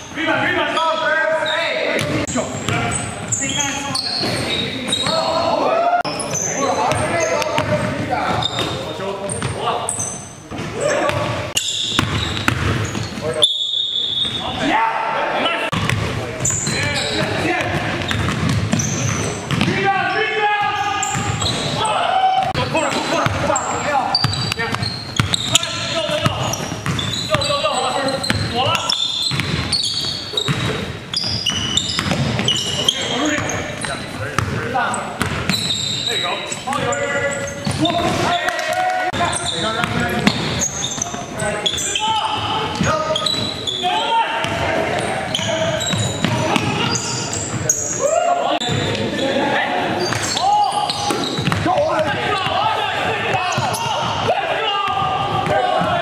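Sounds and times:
players shouting: 0.1s - 8.3s, 14.1s - 15.8s, 18.8s - 33.9s, 34.6s - 56.0s
basketball bouncing on hardwood: 11.1s - 13.2s, 15.8s - 19.8s, 24.2s - 27.5s, 29.3s - 32.6s, 51.1s - 52.6s.

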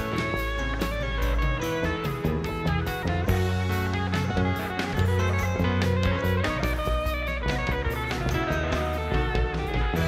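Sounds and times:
bass notes: 0.0s - 10.0s
drum kit with cymbals: 0.0s - 10.0s
electric guitars: 0.0s - 10.0s.

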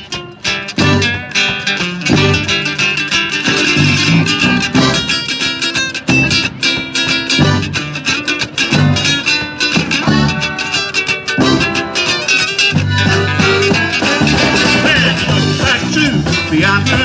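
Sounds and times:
accordion: 0.0s - 17.0s
steady drum beat: 0.0s - 17.0s
strummed guitars: 0.0s - 17.0s
saxophone: 9.9s - 16.0s.

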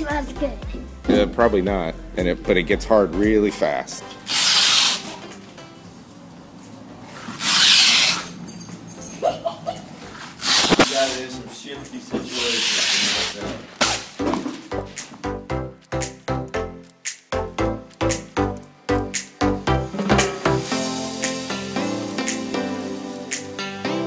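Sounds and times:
masking tape ripping off dispenser: 4.3s - 5.2s, 7.3s - 8.3s, 10.4s - 11.2s, 12.3s - 14.2s.

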